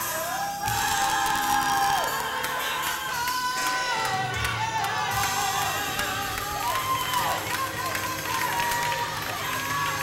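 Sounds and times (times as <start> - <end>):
congregation clapping: 0.7 - 10.0.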